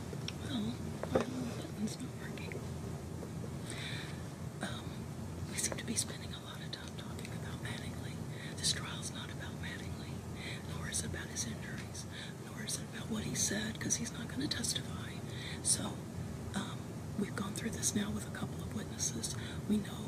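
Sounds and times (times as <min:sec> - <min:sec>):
low room hum: 0:00.0 - 0:20.0
people whispering: 0:00.4 - 0:02.6.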